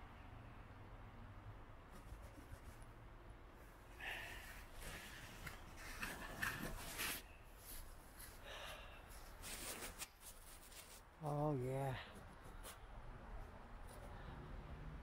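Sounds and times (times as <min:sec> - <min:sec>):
rustling: 0:04.2 - 0:11.1.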